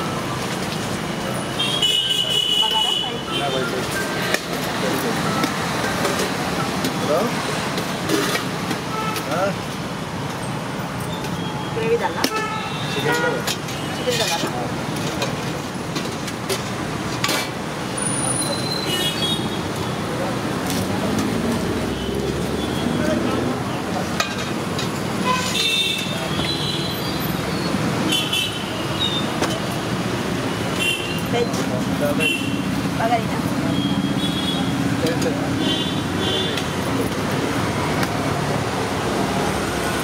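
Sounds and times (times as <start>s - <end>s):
steady traffic noise: 0.0s - 40.0s.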